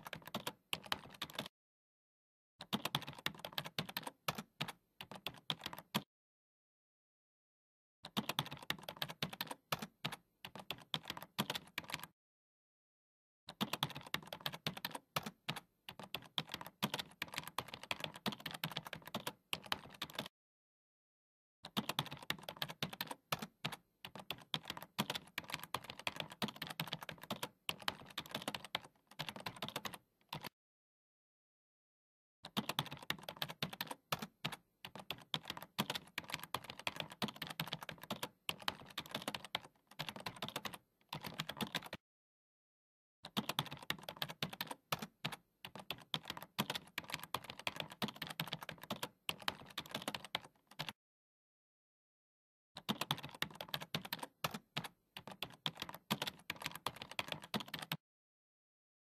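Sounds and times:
keyboard typing: 0:00.0 - 0:01.5, 0:02.6 - 0:06.1, 0:08.0 - 0:12.1, 0:13.5 - 0:20.3, 0:21.6 - 0:30.5, 0:32.4 - 0:42.0, 0:43.2 - 0:51.0, 0:52.8 - 0:58.0.

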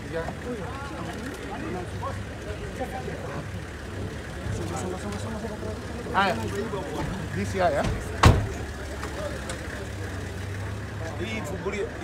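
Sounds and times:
faint voices: 0:00.0 - 0:12.0
vehicle engine idling: 0:00.0 - 0:12.0.

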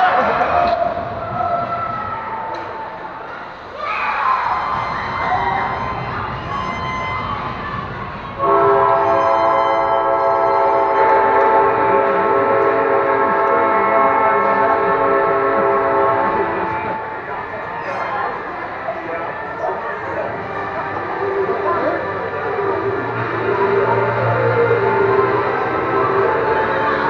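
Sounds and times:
spectators shouting: 0:00.0 - 0:27.0
ice rink horn blast: 0:08.4 - 0:17.0.

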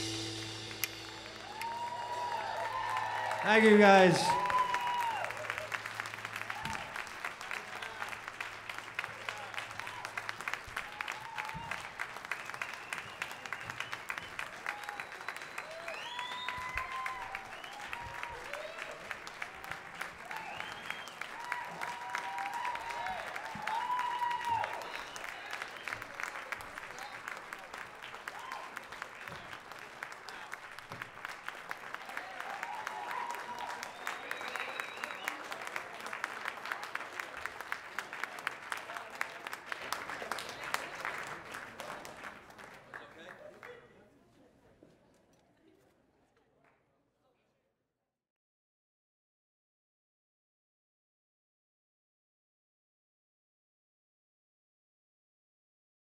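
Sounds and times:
audience applauding: 0:00.0 - 0:43.9
crowd cheering and whooping: 0:00.8 - 0:07.1, 0:09.6 - 0:12.0, 0:14.6 - 0:19.0, 0:20.2 - 0:25.7, 0:32.0 - 0:35.7.

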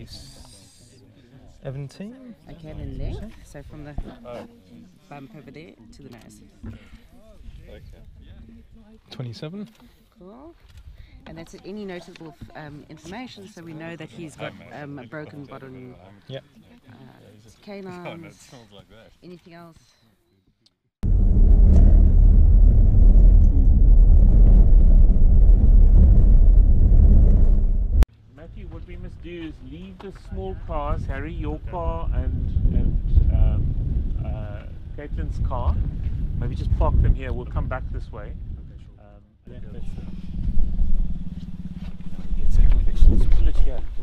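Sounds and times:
vehicle driving on dirt road: 0:21.0 - 0:28.0, 0:39.6 - 0:44.0
low rumble: 0:21.0 - 0:29.3, 0:30.2 - 0:44.0.

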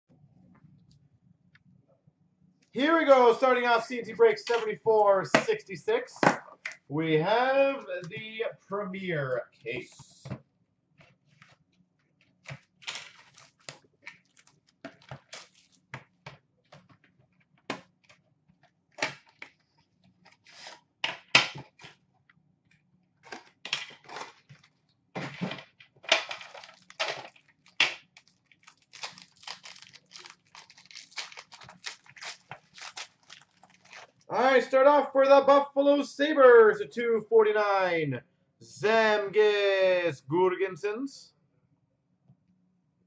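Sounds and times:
packaging crinkling and rustling: 0:12.2 - 0:15.9, 0:23.2 - 0:24.9, 0:26.0 - 0:34.3
cardboard tearing: 0:26.4 - 0:34.2.

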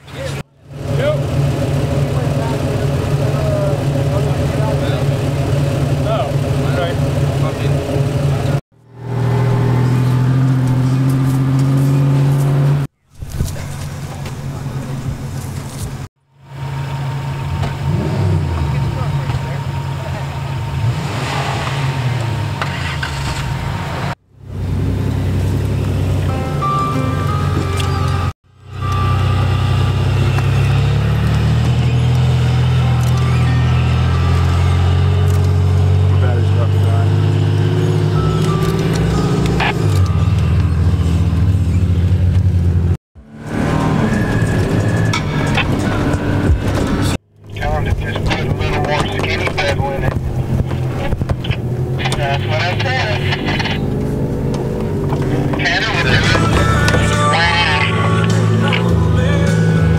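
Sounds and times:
off-road engines running: 0:00.0 - 0:59.9
music: 0:26.3 - 0:28.3, 0:56.4 - 0:59.9
indistinct voices: 0:43.6 - 0:59.9.

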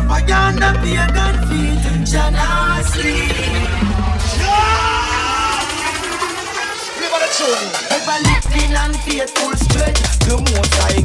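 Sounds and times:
drum and bass music: 0:00.0 - 0:11.0.

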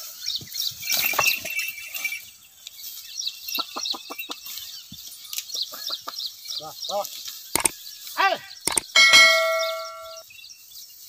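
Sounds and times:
metallic notification ding: 0:08.7 - 0:10.2.

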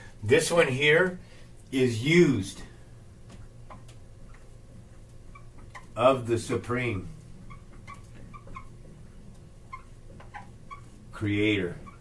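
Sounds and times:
faint low hum: 0:00.0 - 0:12.0
marker squeaking on whiteboard: 0:03.4 - 0:06.0, 0:07.4 - 0:12.0.

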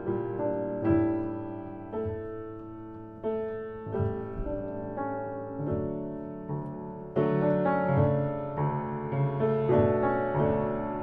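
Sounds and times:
piano chords ringing: 0:00.0 - 0:11.0.

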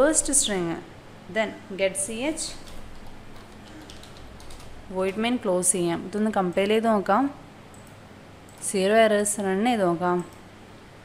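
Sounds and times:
soft keyboard typing: 0:02.5 - 0:05.4, 0:07.7 - 0:08.8.

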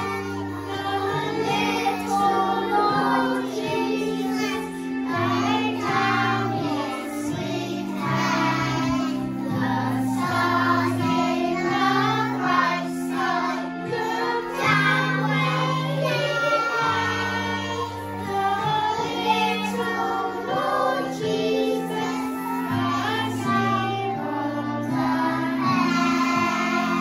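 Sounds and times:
children singing: 0:00.0 - 0:27.0
instrumental accompaniment: 0:00.0 - 0:27.0.

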